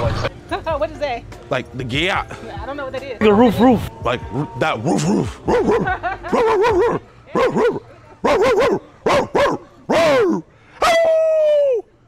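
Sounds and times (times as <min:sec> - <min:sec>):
man imitating dog barks: 0:03.3 - 0:11.4
laughter: 0:05.5 - 0:07.0.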